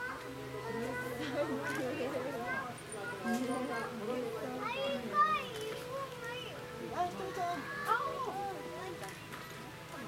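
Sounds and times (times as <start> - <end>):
people chatting: 0.0 - 10.0.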